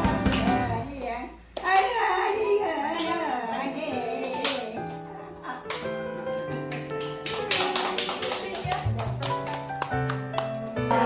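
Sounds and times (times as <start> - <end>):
audience clapping in time: 6.6 - 10.6.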